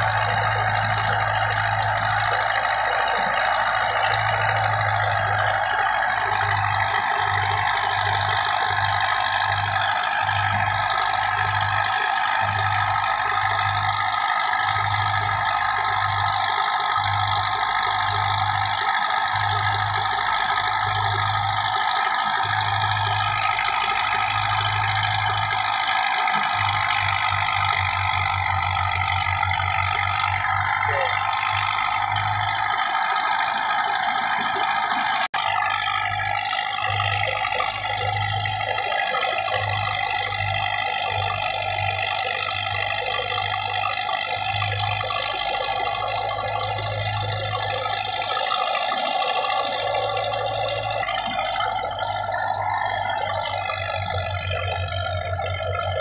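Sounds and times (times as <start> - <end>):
low pulsing throb: 0.0 - 56.0
tractor diesel engine under load: 0.0 - 56.0.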